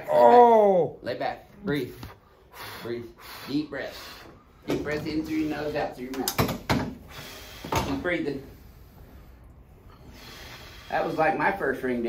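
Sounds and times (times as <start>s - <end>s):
man breathing heavily: 2.2s - 4.6s, 7.0s - 11.7s.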